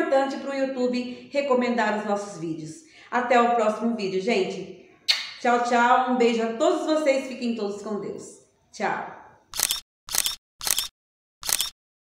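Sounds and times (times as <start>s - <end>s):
short sharp clicks: 5.1s - 5.4s, 9.5s - 11.8s.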